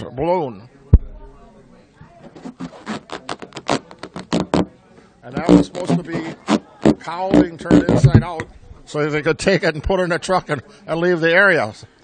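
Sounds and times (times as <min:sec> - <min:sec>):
rubber balloon squeaking: 0:02.2 - 0:04.7, 0:05.4 - 0:08.5.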